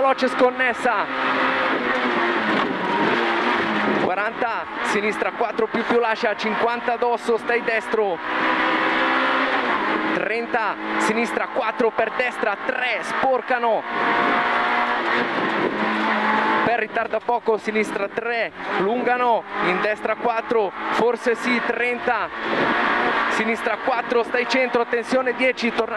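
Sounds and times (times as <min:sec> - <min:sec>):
rally car engine running hard: 0:00.0 - 0:25.9.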